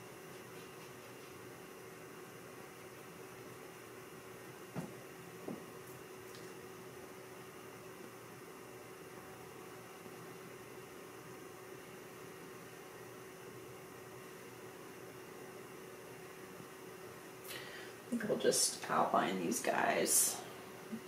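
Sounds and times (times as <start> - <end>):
faint hum: 0.0 - 21.0.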